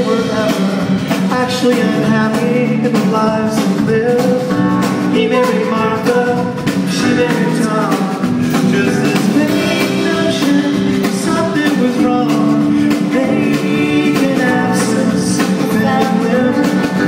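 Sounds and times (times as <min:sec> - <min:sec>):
live pop-rock band: 0:00.0 - 0:17.0.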